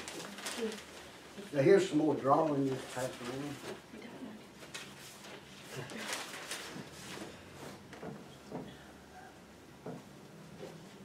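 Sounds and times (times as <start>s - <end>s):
paper sheets rustling: 0.0s - 3.8s, 4.6s - 8.0s.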